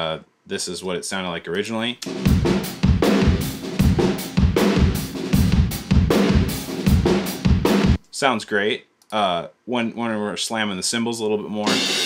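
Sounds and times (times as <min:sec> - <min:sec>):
rock drum kit beat: 0:02.0 - 0:08.0, 0:11.6 - 0:12.0.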